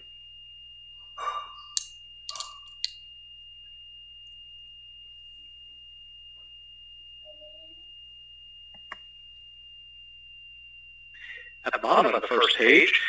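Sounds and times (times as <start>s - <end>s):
faint high whine: 0.0s - 13.0s
low hum: 0.1s - 13.0s.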